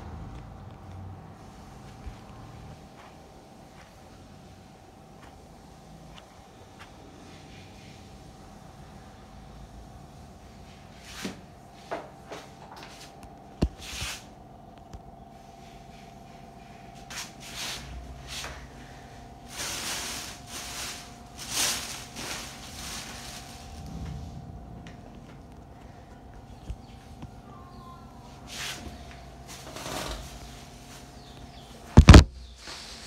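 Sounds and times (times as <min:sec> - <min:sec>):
electric fan humming: 0:00.0 - 0:33.0.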